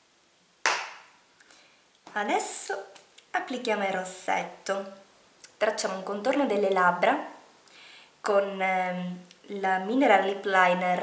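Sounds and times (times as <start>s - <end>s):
sharp knock on hard surface: 0.7s - 1.1s.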